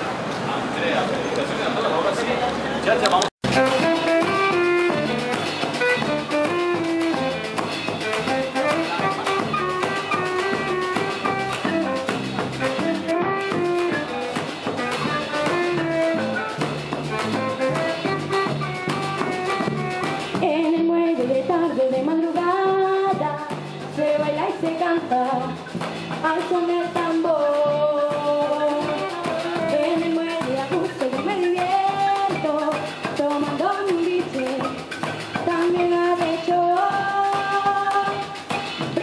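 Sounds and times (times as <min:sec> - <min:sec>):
electric bass: 0:02.9 - 0:26.5
drum kit: 0:03.2 - 0:39.0
saxophone: 0:03.4 - 0:25.4, 0:26.5 - 0:33.4
girl singing into a microphone: 0:20.3 - 0:25.6, 0:26.2 - 0:34.8, 0:35.4 - 0:38.4.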